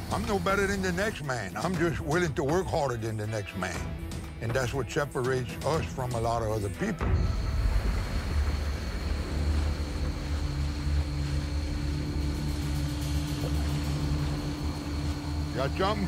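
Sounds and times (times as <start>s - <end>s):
outboard motor running: 0.0s - 2.6s, 7.1s - 16.0s
steady tone: 7.0s - 16.0s.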